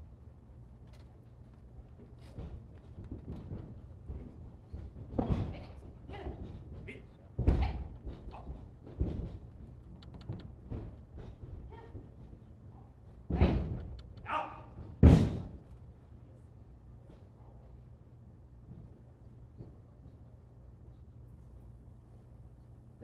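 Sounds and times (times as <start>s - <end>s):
light knocks and shuffles: 0.6s - 16.2s
bodies thudding on mat: 13.3s - 13.9s, 14.8s - 15.6s.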